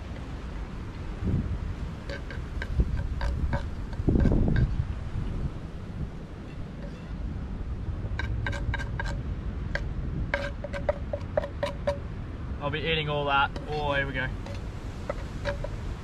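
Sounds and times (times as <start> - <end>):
low wind rumble: 0.0 - 16.0
metal utensil scraping frying pan: 2.0 - 4.8, 8.2 - 9.2, 9.8 - 12.0, 13.5 - 15.8.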